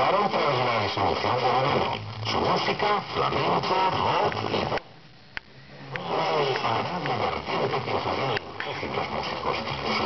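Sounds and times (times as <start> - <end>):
voice from radio speaker: 0.0 - 4.8, 5.9 - 10.0
radio hiss: 0.0 - 10.0.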